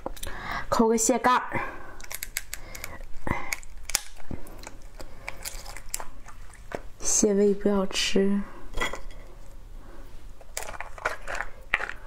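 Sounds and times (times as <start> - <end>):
crab shell clicks and crackles: 1.9 - 6.4, 10.4 - 12.0.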